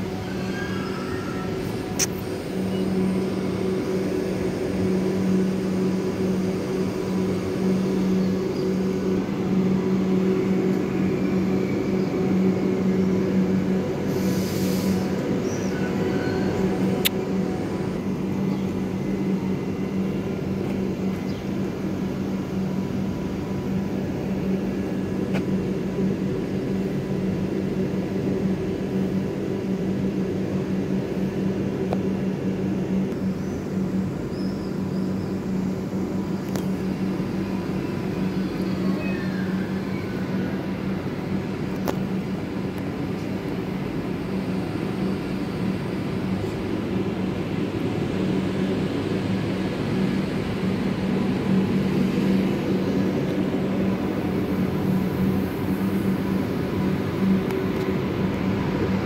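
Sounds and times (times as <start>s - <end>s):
electric train humming: 0.0s - 59.0s.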